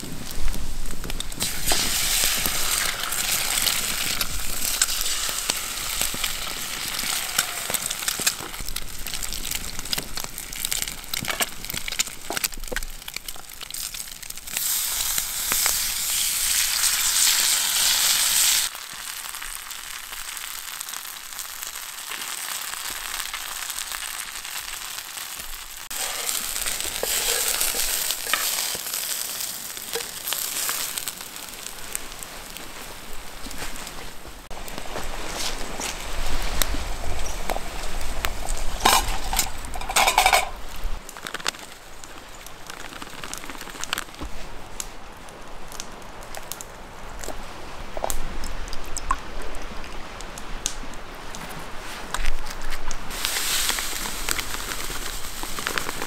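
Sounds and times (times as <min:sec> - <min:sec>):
wood fire crackling and popping: 0:00.0 - 0:56.0
bacon and eggs sizzling in pan: 0:01.0 - 0:33.4, 0:34.4 - 0:44.1, 0:53.1 - 0:56.0.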